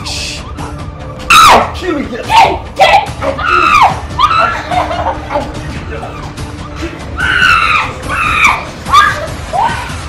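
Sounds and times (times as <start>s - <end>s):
background music: 0.0s - 10.0s
woman screaming: 2.9s - 4.8s, 7.2s - 10.0s.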